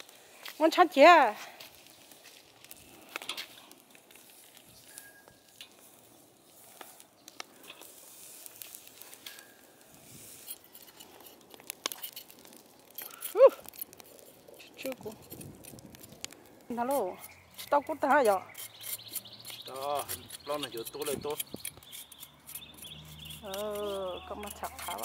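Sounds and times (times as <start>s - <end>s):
fur crackling over charcoal: 0.0s - 25.0s.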